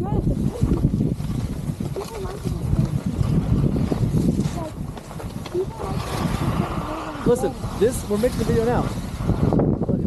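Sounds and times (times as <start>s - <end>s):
wind buffeting microphone: 0.0s - 10.0s
skis scraping on snow: 0.8s - 9.6s.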